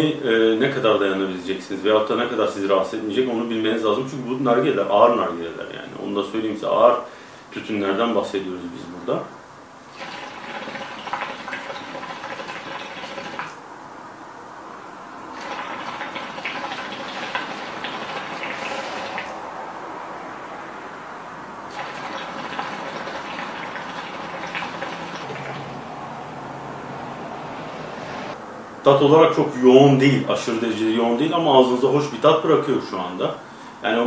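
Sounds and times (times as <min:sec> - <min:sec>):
hookah water bubbling: 0:09.9 - 0:13.6, 0:15.3 - 0:19.4, 0:21.7 - 0:25.8.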